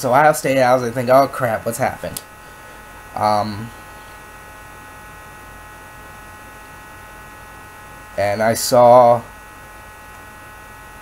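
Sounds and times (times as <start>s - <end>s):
electrical hum and hiss: 0.0s - 11.0s.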